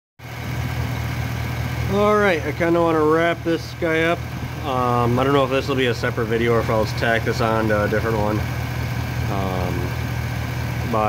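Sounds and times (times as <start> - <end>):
engine idling with low drone: 0.2 - 11.0.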